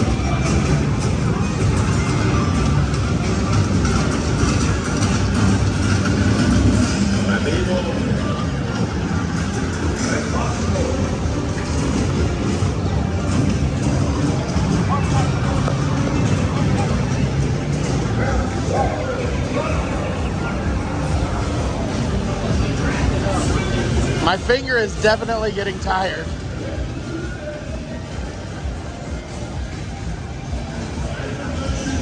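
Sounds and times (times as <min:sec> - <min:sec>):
ride music: 0:00.0 - 0:32.0.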